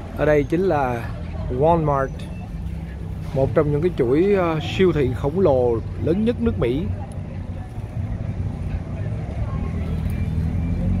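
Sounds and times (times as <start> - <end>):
low rumble of vehicle engines: 0.0 - 11.0.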